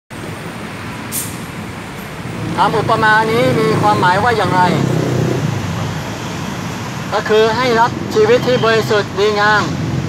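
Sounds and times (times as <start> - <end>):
city street traffic: 0.1 - 10.0.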